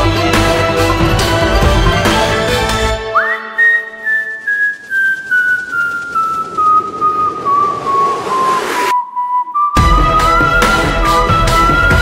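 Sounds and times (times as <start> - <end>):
high whistle tone: 3.0 - 12.0.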